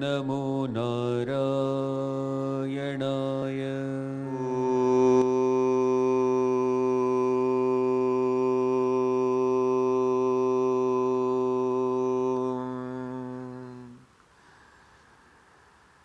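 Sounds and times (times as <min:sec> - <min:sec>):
man chanting om: 0:00.0 - 0:14.1.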